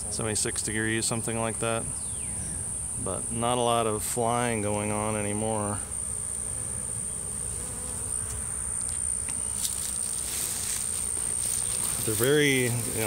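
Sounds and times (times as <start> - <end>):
bee swarm humming: 0.0 - 13.0.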